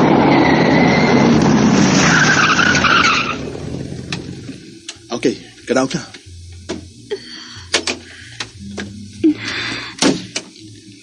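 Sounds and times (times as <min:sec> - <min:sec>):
tyres screeching: 0:00.0 - 0:04.9
car engine and road noise: 0:00.0 - 0:07.1.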